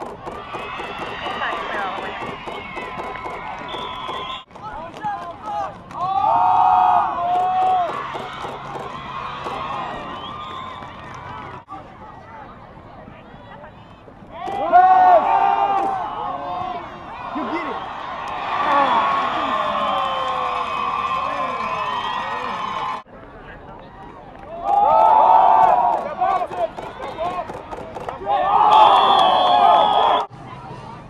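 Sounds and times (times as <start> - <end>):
crowd cheering and yelling: 0.0 - 12.5, 13.5 - 23.1, 23.8 - 30.9.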